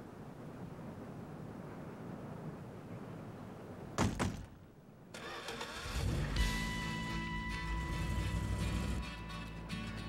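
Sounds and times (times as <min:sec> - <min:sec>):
truck engine starting and revving: 0:05.2 - 0:09.2
music with sustained tones: 0:06.3 - 0:10.0.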